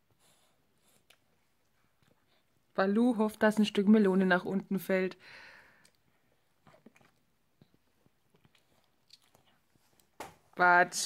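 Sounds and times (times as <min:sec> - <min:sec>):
baby chewing wet clicks: 0:05.8 - 0:10.2.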